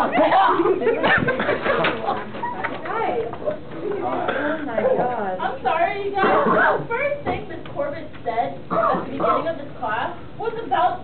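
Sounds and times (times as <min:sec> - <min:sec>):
teenagers laughing hard: 0:00.0 - 0:02.7.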